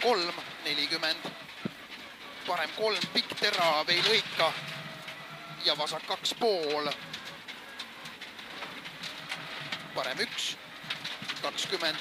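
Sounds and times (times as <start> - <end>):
car engine at speed: 0.0 - 12.0
gravel pattering against car: 0.0 - 12.0.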